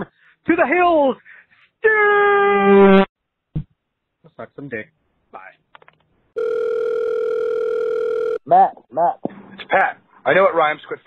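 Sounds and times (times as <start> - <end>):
short thump: 3.5 - 3.8.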